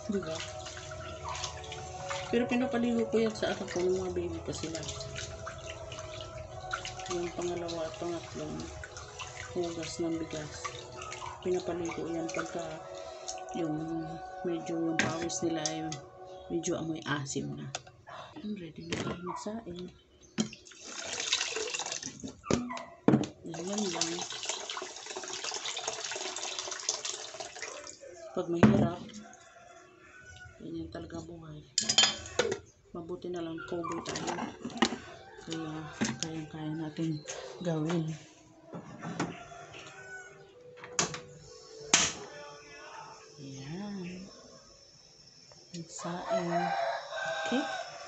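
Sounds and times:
water pouring into pot: 0.0s - 14.2s, 20.4s - 22.3s, 23.5s - 28.2s
metal pot clanking: 31.8s - 32.7s.

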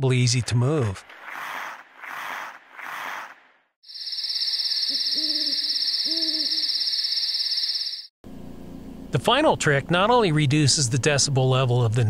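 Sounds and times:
owl hooting: 1.2s - 8.1s
high insect trill: 3.8s - 8.1s.

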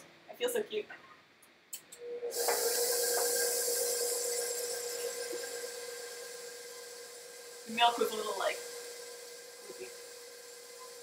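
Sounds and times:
stand mixer whirring: 2.2s - 11.0s.

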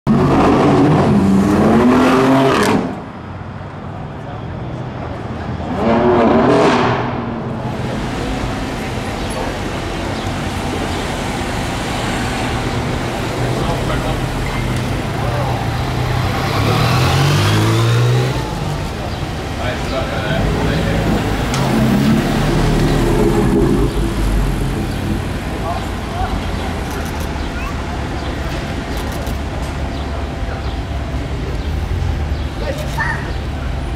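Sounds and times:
car accelerating in tunnel: 0.1s - 3.1s, 5.5s - 10.9s
car engine passing by: 5.4s - 27.4s.

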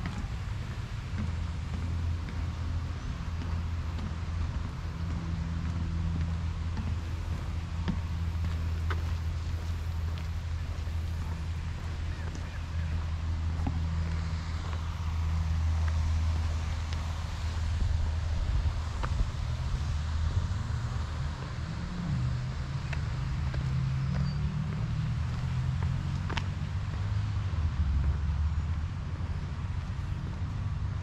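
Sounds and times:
road traffic rumble: 0.0s - 31.0s.

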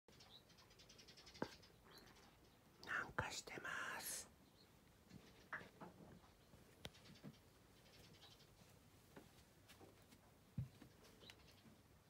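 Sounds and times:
person whispering: 2.8s - 4.3s.

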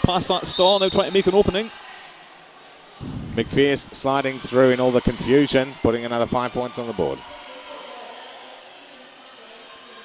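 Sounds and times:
crowd murmur: 1.6s - 10.0s.

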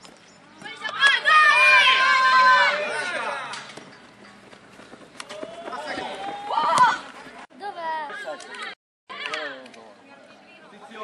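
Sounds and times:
people shouting and calling out: 0.7s - 3.7s, 5.2s - 9.8s.

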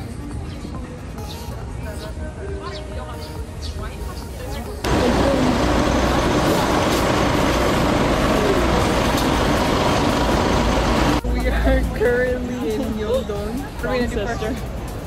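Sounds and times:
faint voices: 0.0s - 15.0s
street traffic: 0.0s - 15.0s
bus engine: 4.8s - 15.0s.

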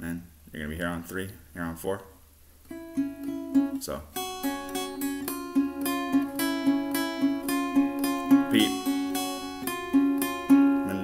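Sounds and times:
acoustic guitar picked: 2.6s - 11.0s
person saying a word: 8.5s - 8.8s.

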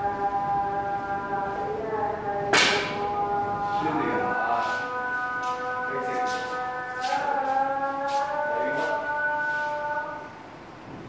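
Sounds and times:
snooker ball crack: 2.5s - 3.0s.

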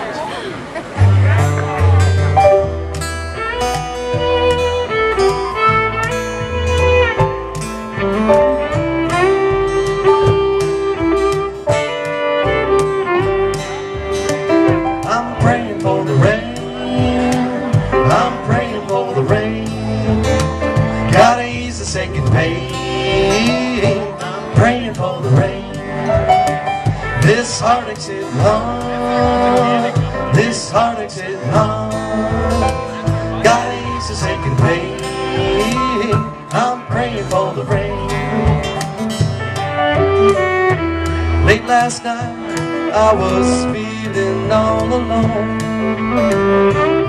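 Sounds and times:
keyboard: 0.0s - 47.0s
strummed acoustic guitar: 0.9s - 47.0s
upright bass: 0.9s - 47.0s
fiddle melody with sliding notes: 1.0s - 47.0s.

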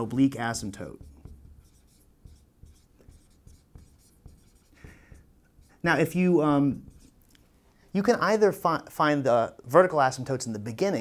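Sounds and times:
marker writing on whiteboard: 0.4s - 7.2s.

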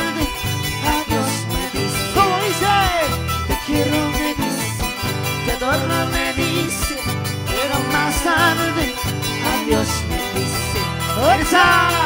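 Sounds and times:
charango strumming: 0.0s - 12.0s
live band music: 0.0s - 12.0s
sliding melody line: 0.0s - 12.0s.

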